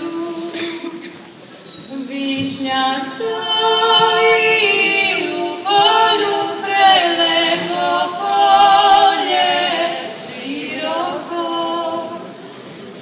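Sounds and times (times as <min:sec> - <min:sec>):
women singing in harmony: 0:00.0 - 0:00.8, 0:01.9 - 0:12.5.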